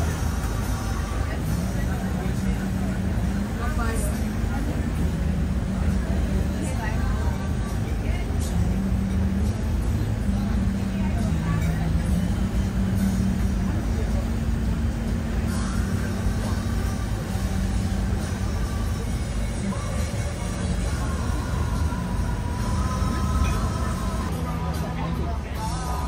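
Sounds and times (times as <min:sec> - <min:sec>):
background voices: 0:00.0 - 0:26.0
boat engine drone: 0:00.0 - 0:26.0.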